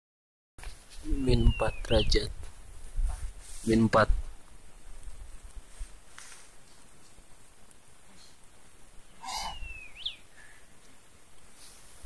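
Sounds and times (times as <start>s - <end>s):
bird whistled call: 9.2s - 10.2s.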